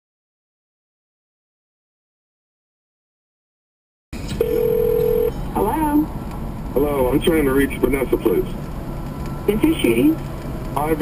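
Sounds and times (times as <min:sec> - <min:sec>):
phone line click: 0:04.4 - 0:05.3
steady telephone tone: 0:04.4 - 0:05.3.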